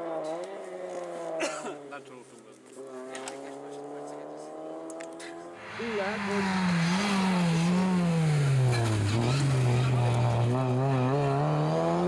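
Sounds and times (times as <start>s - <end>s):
rally car engine at high revs: 0.0s - 1.8s, 2.8s - 12.0s.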